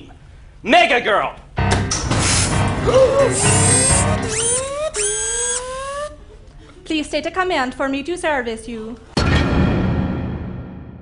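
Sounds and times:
rising electronic tone: 3.2 - 6.2.

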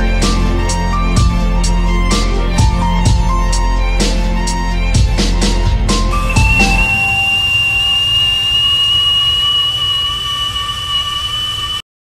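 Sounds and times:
background music: 0.0 - 8.4
kettle whistling: 6.1 - 11.8.

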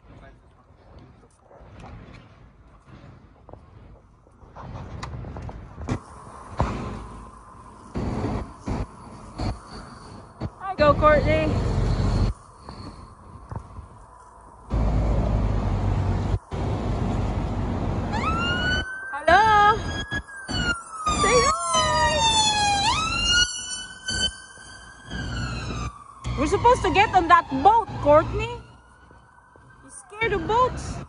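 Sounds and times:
wind buffeting microphone: 0.0 - 18.9
emergency vehicle siren wailing: 5.9 - 31.0.

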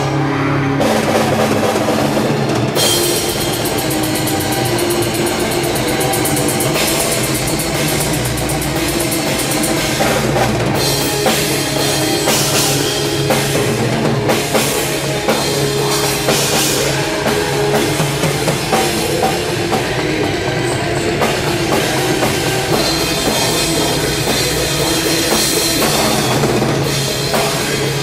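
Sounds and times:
distorted guitars: 0.0 - 28.0
heavy metal band playing: 0.0 - 28.0
dense drumming: 0.8 - 28.0
cymbal crash: 2.5 - 19.7.

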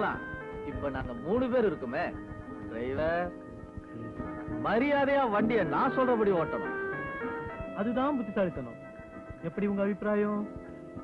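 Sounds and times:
instrumental accompaniment: 0.0 - 11.0.

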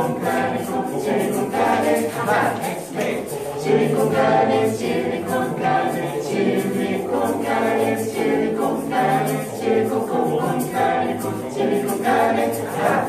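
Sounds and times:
a cappella ensemble singing: 0.0 - 13.0.

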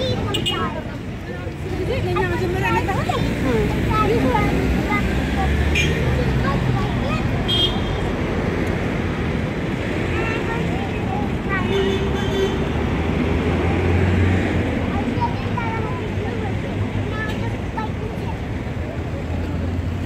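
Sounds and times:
road traffic noise: 0.0 - 20.0
voices of passers-by: 0.0 - 20.0
vehicle rumbling past: 8.0 - 17.0.

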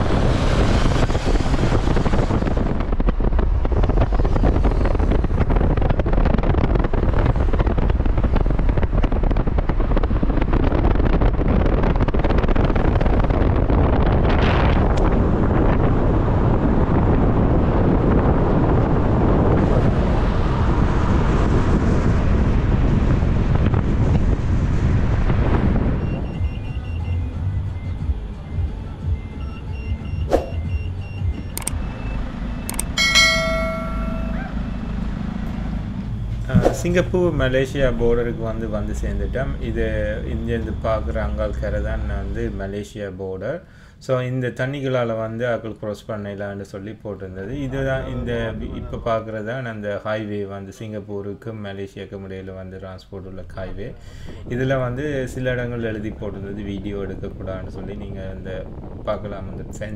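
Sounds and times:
vehicle road and wind noise: 0.0 - 59.9
click: 31.5 - 31.8
short pitched tone: 32.7 - 35.1.

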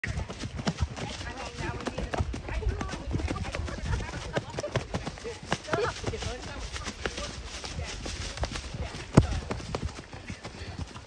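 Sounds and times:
hooves on leafy dirt trail: 0.0 - 11.0.

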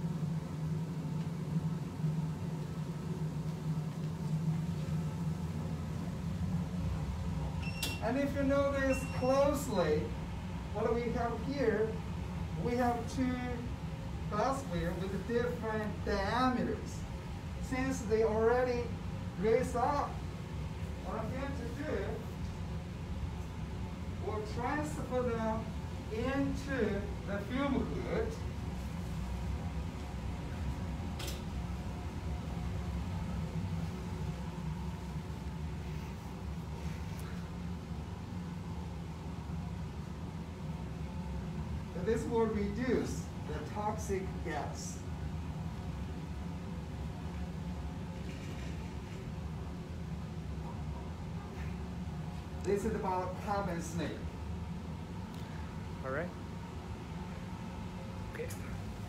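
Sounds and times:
ventilation hum and airy rush: 0.0 - 59.0.

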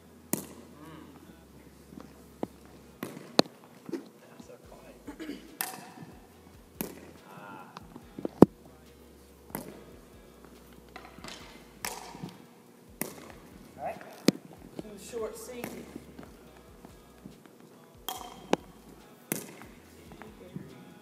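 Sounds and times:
paddle striking plastic ball: 5.6 - 6.1, 11.0 - 12.4, 13.0 - 13.4, 18.1 - 18.7
ball bouncing on wooden floor: 5.6 - 6.2, 6.8 - 7.1, 11.0 - 12.4, 13.0 - 14.9, 15.6 - 16.0, 18.1 - 18.7.

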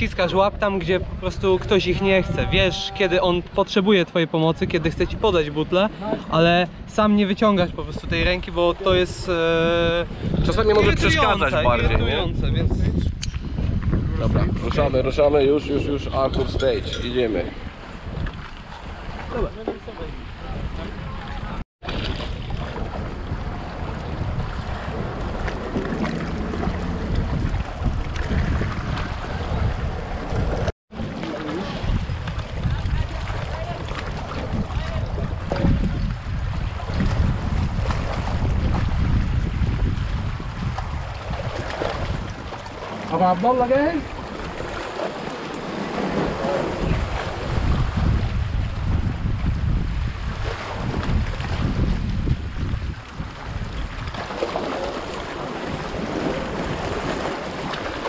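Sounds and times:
wind buffeting microphone: 0.0 - 3.8, 4.4 - 58.0
sea water washing among rocks: 21.8 - 58.0.

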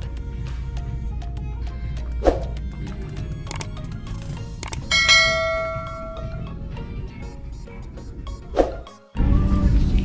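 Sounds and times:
background music: 0.0 - 10.0
quick clicks: 3.4 - 4.9
bell chime: 4.8 - 6.5.

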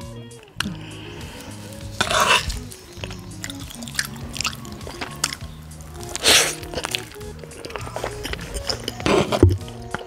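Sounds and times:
background music sustained notes: 0.0 - 10.0
metal spoon scraping wooden dish: 1.9 - 4.1.

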